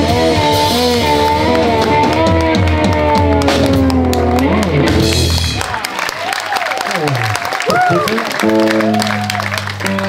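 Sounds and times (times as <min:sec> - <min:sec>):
electric guitar sliding notes: 0:00.0 - 0:05.6.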